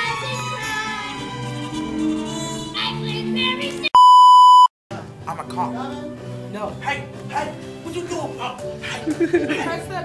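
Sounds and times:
music with singing: 0.0s - 3.8s
loud electronic beep: 4.0s - 4.7s.

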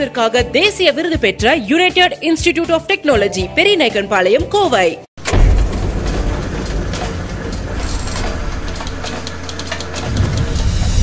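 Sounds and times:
sound effect hit: 5.2s - 11.0s.

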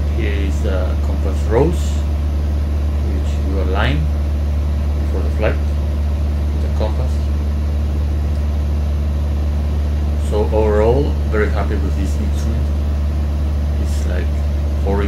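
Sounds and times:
aircraft engine and propeller drone: 0.0s - 15.0s.

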